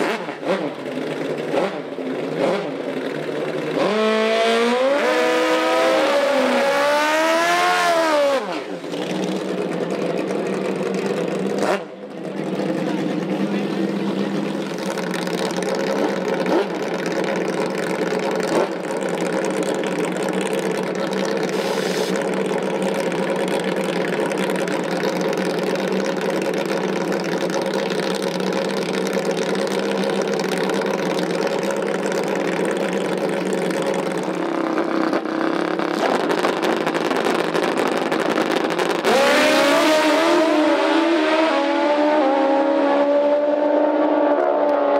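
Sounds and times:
motorcycle engine idling: 0:00.4 - 0:03.8, 0:08.6 - 0:39.0.

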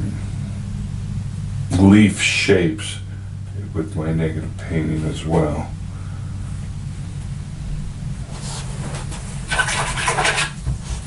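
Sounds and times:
steady low hum: 0:00.0 - 0:11.0
brush bristles scrubbing a surface: 0:08.3 - 0:11.0.

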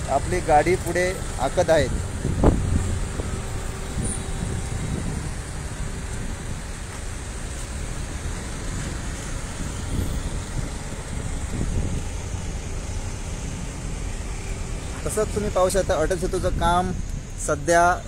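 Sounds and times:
traffic engines rumbling: 0:00.0 - 0:18.0
vehicles passing close: 0:00.0 - 0:18.0.

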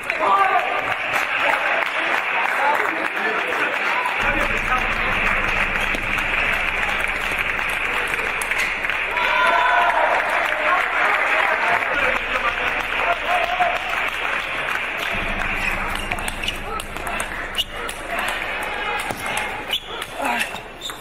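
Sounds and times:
spectators clapping: 0:00.0 - 0:20.8.

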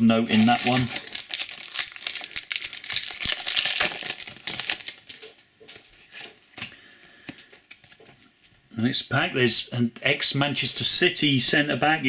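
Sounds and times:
foil wrapper crinkling: 0:00.3 - 0:06.3.

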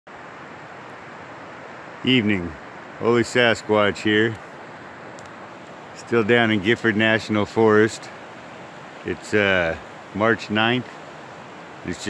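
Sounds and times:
river rushing: 0:00.1 - 0:12.0.

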